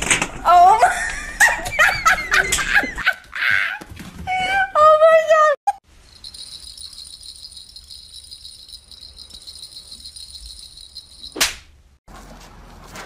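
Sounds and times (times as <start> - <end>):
outdoor background noise: 0.0 - 13.0
small jingle bell rattling: 5.9 - 11.4.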